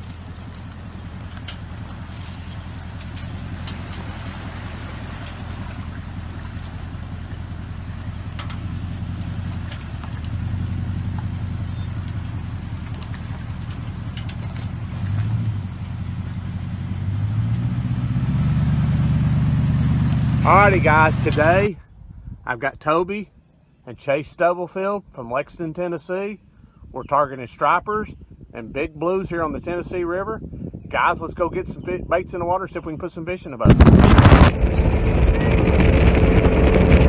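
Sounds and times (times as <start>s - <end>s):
engine idling: 0.0s - 16.9s, 19.0s - 21.7s, 33.7s - 37.0s.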